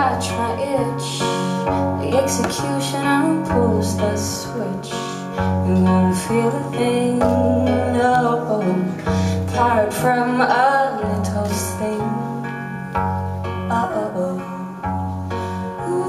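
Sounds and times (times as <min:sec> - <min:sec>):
woman singing: 0:00.0 - 0:12.8, 0:13.6 - 0:14.9, 0:15.5 - 0:16.0
strummed acoustic guitar: 0:00.0 - 0:16.0.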